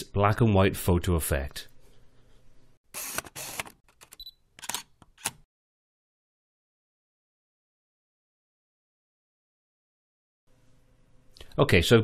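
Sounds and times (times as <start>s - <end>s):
short mechanical bursts: 2.9s - 3.8s
camera shutter clicks: 3.0s - 5.4s.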